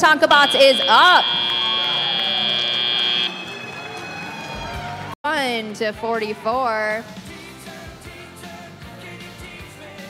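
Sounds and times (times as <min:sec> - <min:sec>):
crowd and hall noise: 0:00.0 - 0:05.2
electronic buzzer tone: 0:00.2 - 0:03.6.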